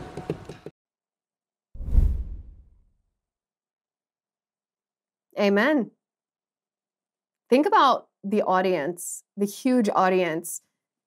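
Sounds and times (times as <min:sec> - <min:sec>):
whoosh with deep rumble: 0:01.8 - 0:02.8.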